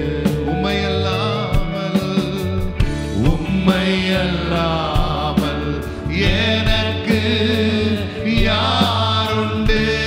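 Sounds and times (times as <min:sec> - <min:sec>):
live band accompaniment: 0:00.0 - 0:10.0
men singing into microphones: 0:00.0 - 0:10.0
steady low bass: 0:00.0 - 0:10.0.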